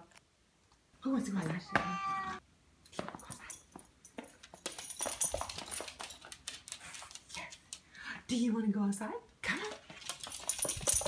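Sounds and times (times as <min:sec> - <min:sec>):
dog claws clicking on hardwood floor: 0:04.1 - 0:07.9, 0:09.7 - 0:11.0.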